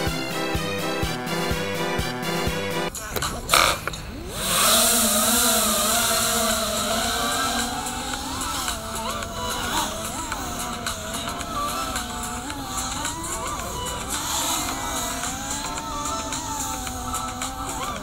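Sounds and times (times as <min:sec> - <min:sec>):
quadcopter motors whining: 0:00.0 - 0:18.0.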